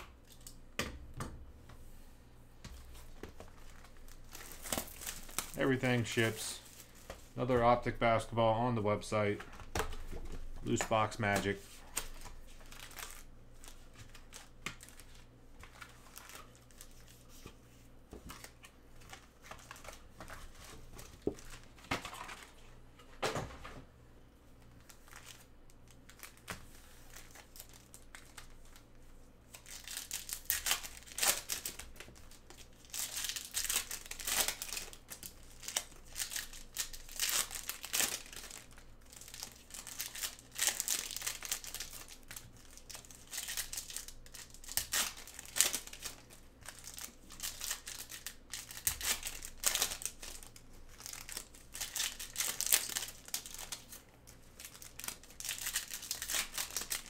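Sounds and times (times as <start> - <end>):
foil wrappers crinkling and tearing: 2.8 - 8.3, 9.5 - 17.5, 18.3 - 22.6, 24.7 - 57.0.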